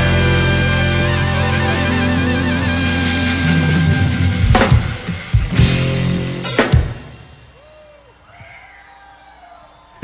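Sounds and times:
loud accented band hits: 0.0s - 7.6s
live band playing: 0.0s - 7.8s.

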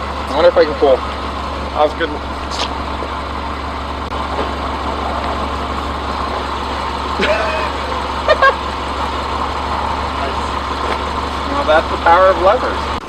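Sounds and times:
car engine idling: 0.0s - 13.0s.

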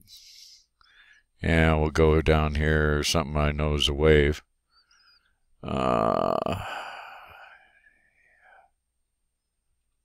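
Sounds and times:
faint breathy murmur: 4.8s - 8.8s
man's drawn-out hesitation: 5.6s - 7.4s.

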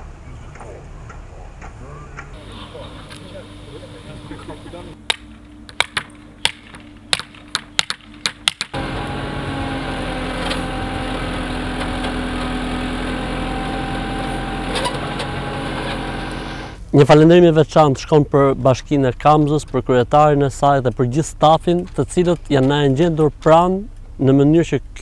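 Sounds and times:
backhoe diesel engine running: 0.0s - 5.0s, 8.7s - 16.8s.

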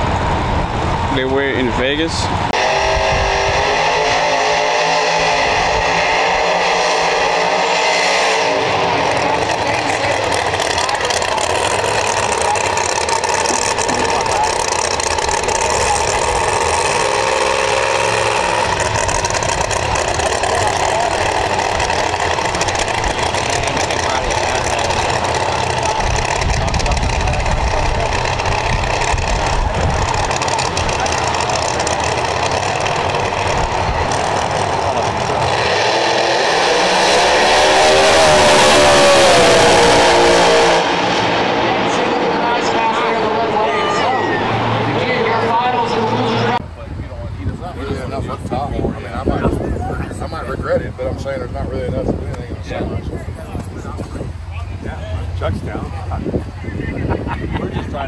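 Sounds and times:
race car engine burnout: 0.0s - 46.6s.

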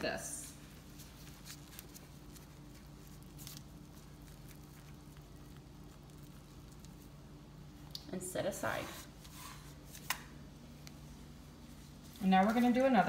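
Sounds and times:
faint low hum: 0.0s - 13.0s
plastic gloves rustling: 0.0s - 13.0s.

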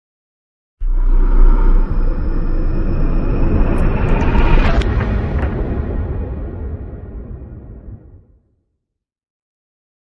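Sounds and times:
loud deep rumble: 0.8s - 8.4s.

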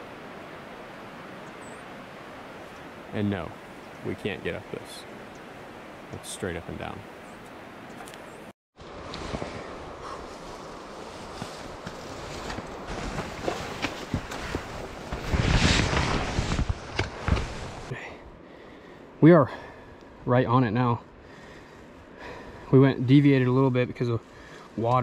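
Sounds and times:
leaves and stems rustling: 7.9s - 18.0s
footsteps in undergrowth: 9.0s - 17.9s.

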